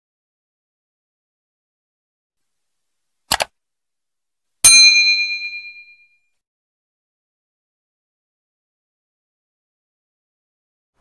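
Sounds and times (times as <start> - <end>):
bright bell ding: 4.7 - 6.2.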